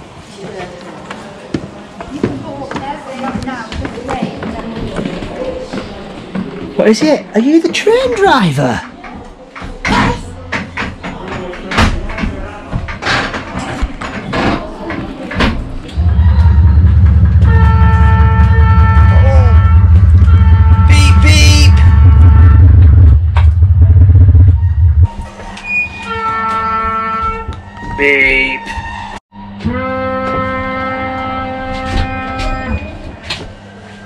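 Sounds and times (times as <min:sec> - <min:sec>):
held steady tones: 0:16.0 - 0:25.1
loud low engine rumble: 0:16.0 - 0:25.1.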